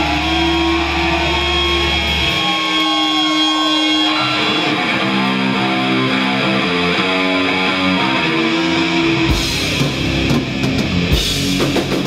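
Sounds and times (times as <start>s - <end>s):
heavy metal band playing live: 0.0s - 12.0s.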